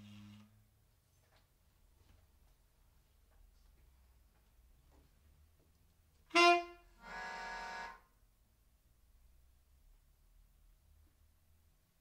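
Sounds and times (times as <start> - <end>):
saxophones and keyboards held tone: 6.3 - 8.0.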